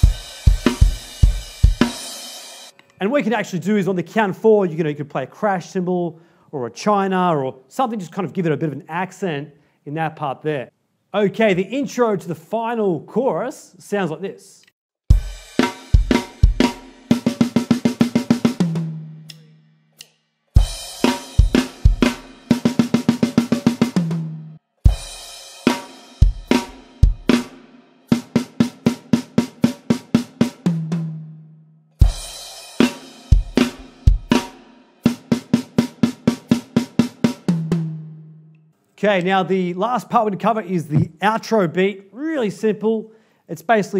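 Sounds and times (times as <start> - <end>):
drum kit solo: 0.0 - 2.8, 15.1 - 19.5, 20.6 - 31.4, 32.0 - 38.4.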